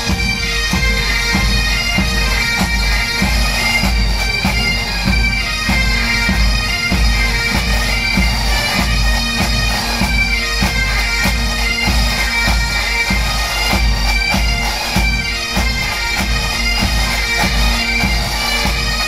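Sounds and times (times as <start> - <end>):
snare and bass drums beating: 0.0 - 18.9
bagpipes playing with drones: 0.0 - 19.0.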